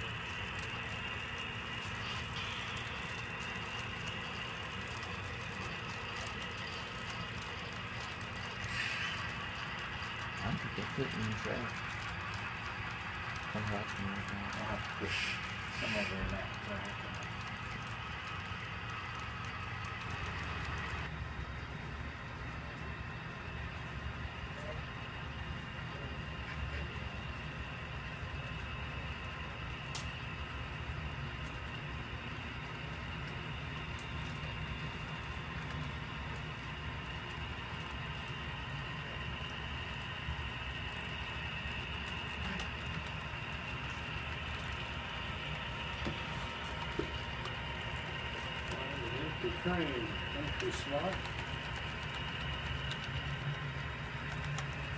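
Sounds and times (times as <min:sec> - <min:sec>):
model train running on track: 0:00.0 - 0:54.9.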